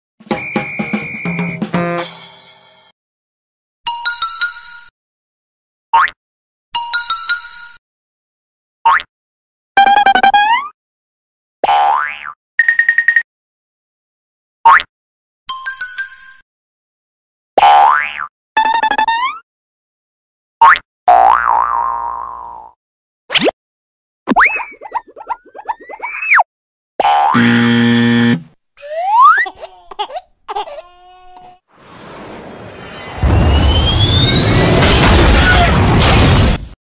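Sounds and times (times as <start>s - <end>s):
held note: 0.3s - 2.7s
wrong-answer buzzer: 0.4s - 2.2s, 27.3s - 28.6s
cartoon squeaks: 24.3s - 26.4s, 28.8s - 31.6s
cartoon rising whoop: 28.8s - 29.4s, 32.1s - 35.9s.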